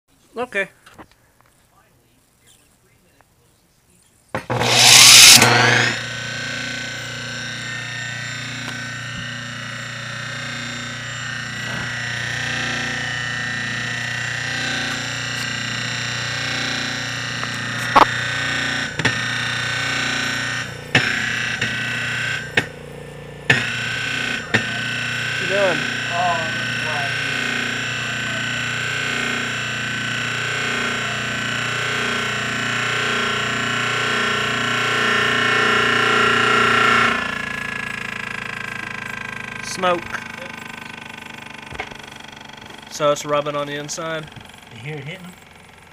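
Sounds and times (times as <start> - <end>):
electric motor humming and whining: 4.4 - 45.9
rotor knocking inside casing: 4.4 - 45.9.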